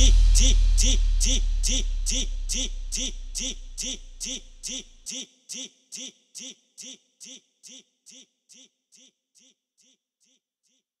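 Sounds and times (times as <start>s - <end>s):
looped sung vocal chop: 0.0s - 9.5s.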